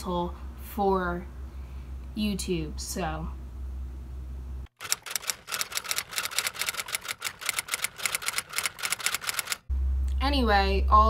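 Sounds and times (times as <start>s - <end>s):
rapid sharp clicks: 4.7s - 9.7s.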